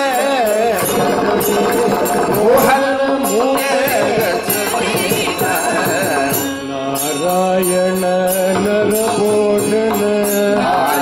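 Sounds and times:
voices singing held notes: 0.0 - 11.0
small cymbals struck: 0.1 - 10.6.

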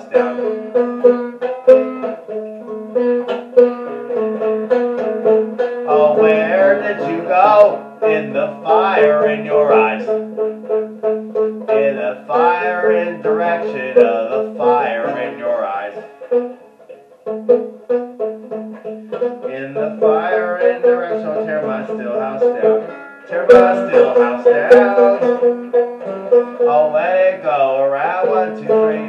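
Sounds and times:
man singing: 0.0 - 0.6, 5.8 - 10.2, 11.7 - 16.1, 19.4 - 25.4, 26.6 - 29.0
banjo fingerpicking: 0.0 - 29.0.

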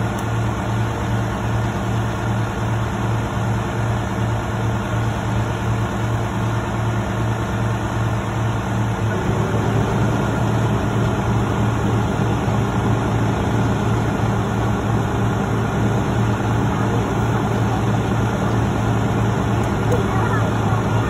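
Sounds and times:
truck diesel engine running: 0.0 - 21.0.

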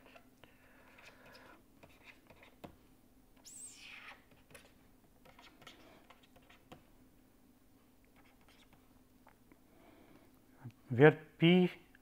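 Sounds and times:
faint steady hum: 0.0 - 12.0
stylus scratching on pen tablet: 1.0 - 2.6, 3.5 - 6.8, 8.2 - 8.8.

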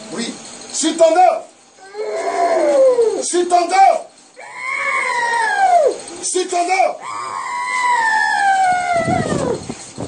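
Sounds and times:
woman wailing: 1.8 - 3.2, 4.4 - 6.0, 7.0 - 9.6.

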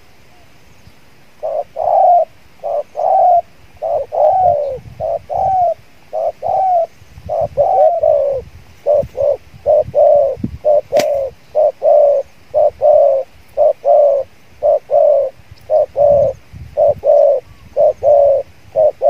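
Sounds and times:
doves cooing: 1.4 - 19.0
sharp click: 10.9 - 11.3.

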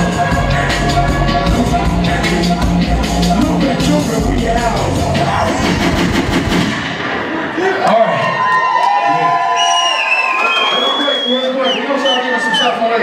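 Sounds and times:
hip-hop track with heavy bass: 0.0 - 7.8
crowd cheering and shouting: 7.0 - 13.0.

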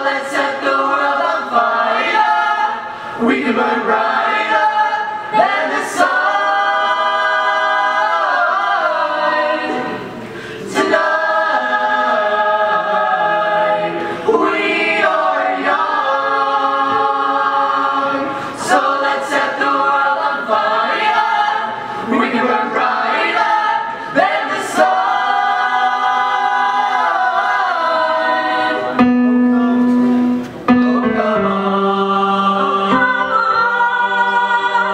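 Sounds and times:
choir singing a cappella: 0.0 - 29.1, 30.7 - 34.9.

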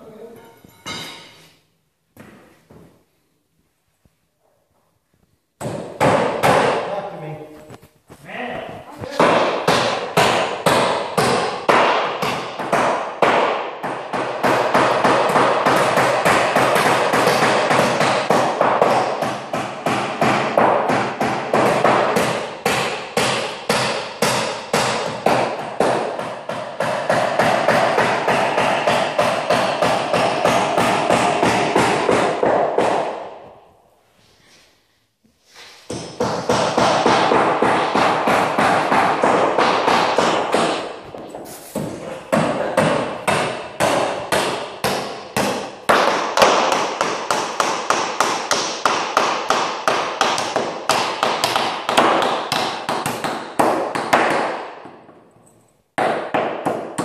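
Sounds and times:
hammer driving nails into wood: 5.6 - 6.9, 9.2 - 33.4, 35.9 - 55.2, 56.0 - 57.0.

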